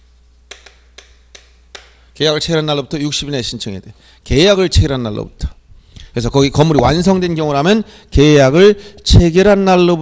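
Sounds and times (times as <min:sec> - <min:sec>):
low steady hum: 0:00.0 - 0:10.0
chalk tapping on chalkboard: 0:00.5 - 0:02.0.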